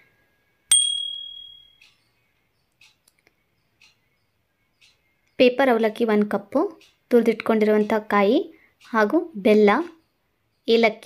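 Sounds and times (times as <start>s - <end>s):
bright bell ding: 0.7s - 1.8s.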